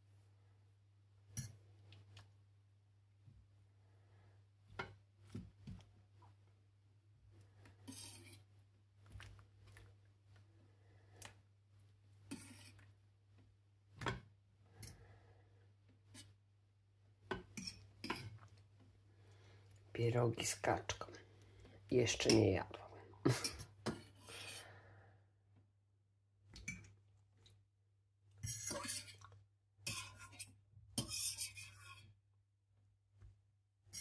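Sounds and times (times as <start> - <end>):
spatula scraping metal frying pan: 7.9 - 8.4, 28.4 - 29.2, 29.8 - 32.1.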